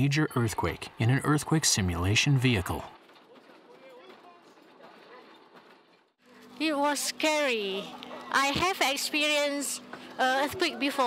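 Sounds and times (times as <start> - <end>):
distant indistinct voices: 0.0 - 5.9.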